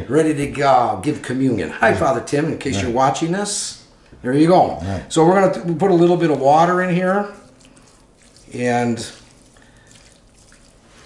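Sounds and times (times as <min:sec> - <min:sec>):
water dribbling into a pan: 0:07.3 - 0:11.0.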